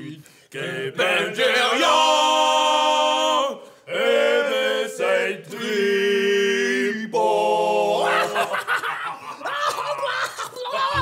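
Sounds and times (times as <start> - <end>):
man chuckling: 8.1 - 11.0.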